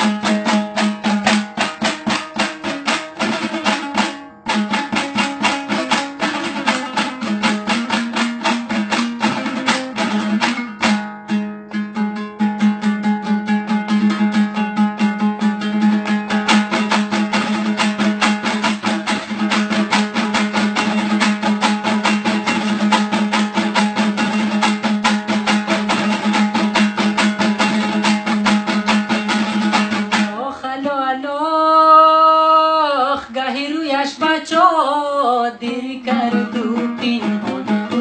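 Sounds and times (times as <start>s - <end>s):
lute strummed: 0.0s - 38.0s
man singing: 31.9s - 38.0s.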